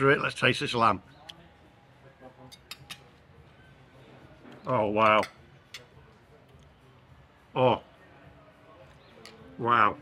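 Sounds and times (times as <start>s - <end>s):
faint background voices: 0.0s - 10.0s
cutlery clicking on plate: 2.4s - 3.2s, 5.0s - 6.0s.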